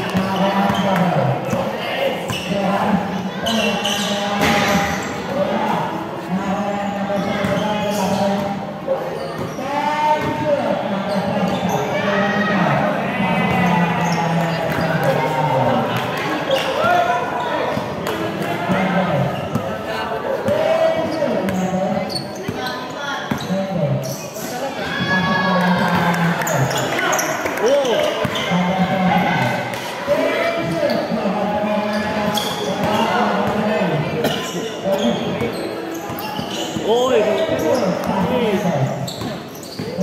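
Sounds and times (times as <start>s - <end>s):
voices talking and calling out: 0.0s - 40.0s.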